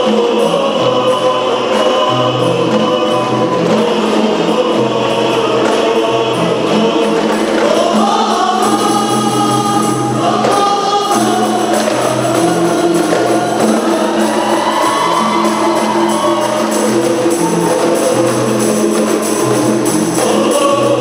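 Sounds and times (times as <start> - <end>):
frame drums: 0.0 - 21.0
men singing in unison: 0.0 - 21.0.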